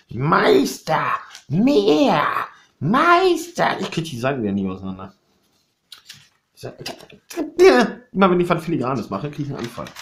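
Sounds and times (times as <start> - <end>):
paper rustling: 5.4 - 7.2, 8.9 - 10.0.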